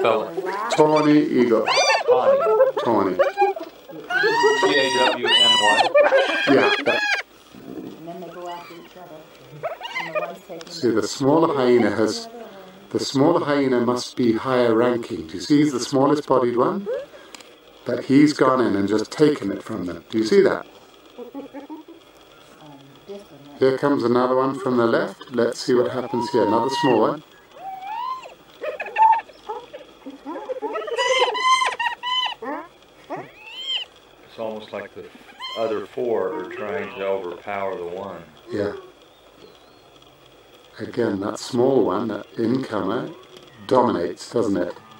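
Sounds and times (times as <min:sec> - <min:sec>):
hyenas calling: 0:00.0 - 0:12.7, 0:16.7 - 0:17.4, 0:24.4 - 0:34.2, 0:35.1 - 0:40.7, 0:42.2 - 0:44.9
hyenas giggling: 0:00.7 - 0:07.2, 0:09.5 - 0:10.4, 0:21.1 - 0:22.2, 0:27.6 - 0:33.9.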